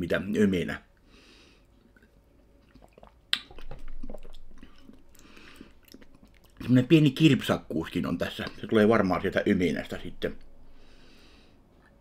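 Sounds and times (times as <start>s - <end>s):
wet lip-smacking: 1.8s - 6.7s
person swallowing: 2.7s - 6.6s.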